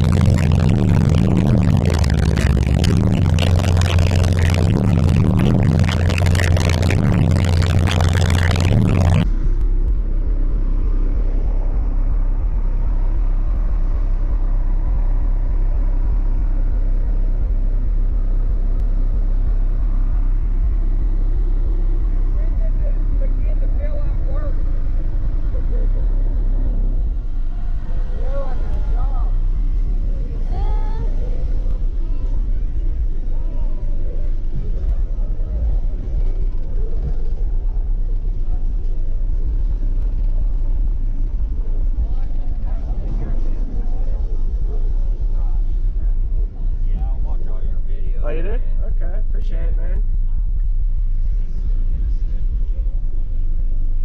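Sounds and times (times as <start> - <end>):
faint voices: 0.0 - 9.3, 21.8 - 54.0
heavy bass from subwoofers: 0.0 - 54.0.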